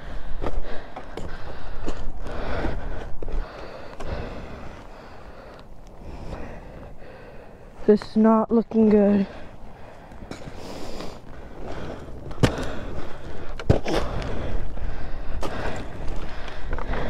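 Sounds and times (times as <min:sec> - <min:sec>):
person breathing heavily: 0:00.0 - 0:07.9, 0:09.2 - 0:17.0.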